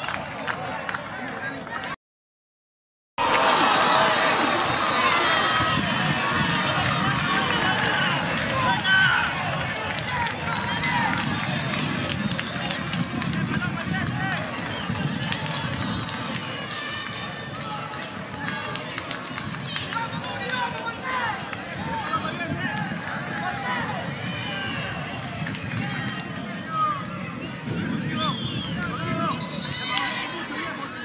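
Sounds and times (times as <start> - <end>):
people shouting outdoors: 3.2 - 11.6.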